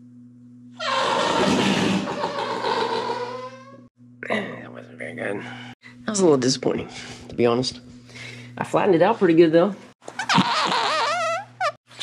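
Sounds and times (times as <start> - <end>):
whoopee cushion fart noise: 10.1 - 11.8.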